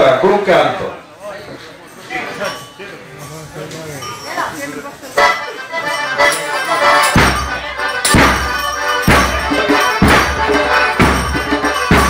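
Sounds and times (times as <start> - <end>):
folk music on accordion: 4.8 - 12.0
strong beat: 6.2 - 12.0.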